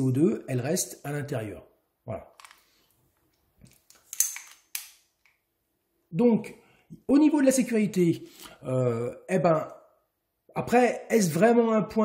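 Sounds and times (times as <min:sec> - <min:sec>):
magazine latching clicks: 0:03.7 - 0:05.4.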